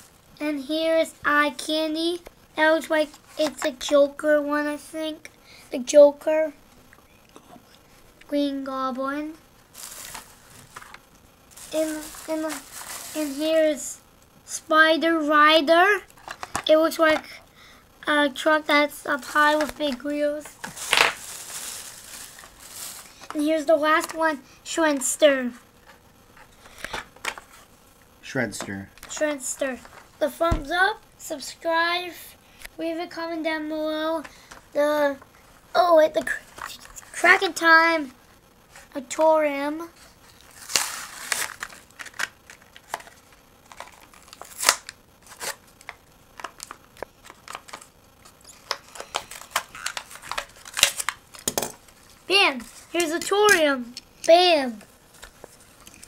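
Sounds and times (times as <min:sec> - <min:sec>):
plastic rustling and crinkling: 0:02.9 - 0:04.0, 0:09.1 - 0:13.9, 0:16.1 - 0:17.2, 0:19.1 - 0:27.7, 0:28.7 - 0:30.8, 0:34.2 - 0:37.5, 0:39.8 - 0:56.0
plastic packaging crackling: 0:09.6 - 0:13.8, 0:16.1 - 0:16.7, 0:19.2 - 0:24.2, 0:40.1 - 0:56.0.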